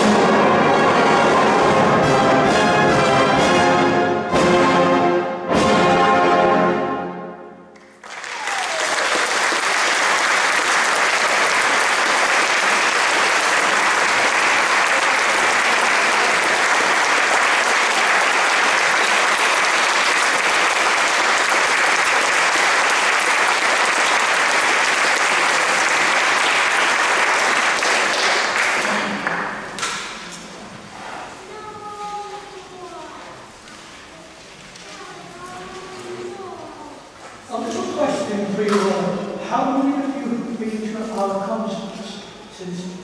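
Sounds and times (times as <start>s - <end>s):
crowd applauding: 7.8s - 29.8s.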